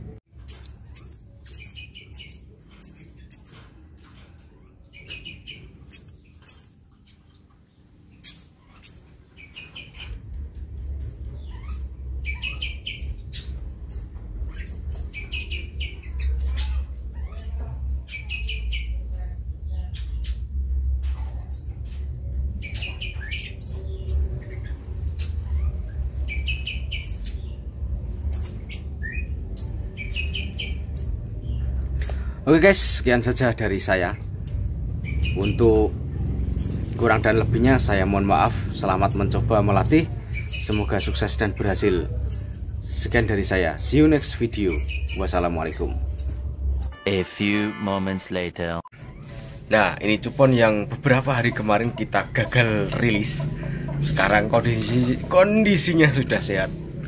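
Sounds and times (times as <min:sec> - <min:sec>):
bird chirping: 0:00.0 - 0:47.0, 0:48.9 - 0:57.0
low steady rumble: 0:04.9 - 0:47.0, 0:49.0 - 0:57.0.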